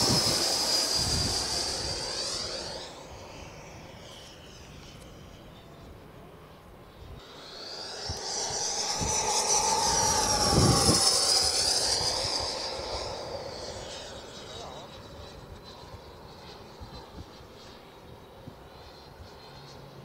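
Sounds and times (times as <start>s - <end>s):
model jet fan whine fly-by: 0.0s - 20.0s.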